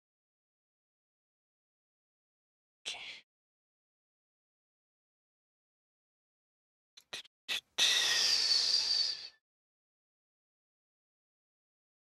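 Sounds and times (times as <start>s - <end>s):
person exhaling: 7.8s - 9.4s.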